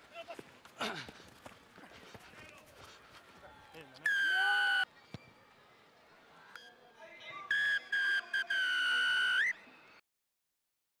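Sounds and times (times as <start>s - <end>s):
referee's whistle blasts: 7.4s - 9.6s.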